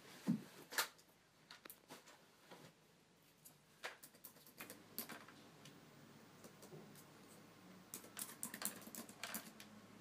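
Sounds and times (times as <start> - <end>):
typing on laptop keyboard: 3.9 - 5.3, 6.4 - 9.7.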